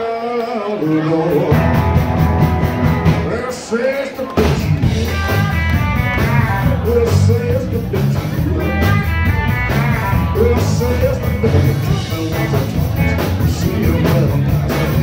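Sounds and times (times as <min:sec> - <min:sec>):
electric guitar: 0:00.0 - 0:15.0
drum kit beat: 0:00.4 - 0:15.0
electric bass: 0:01.4 - 0:03.4, 0:04.4 - 0:15.0.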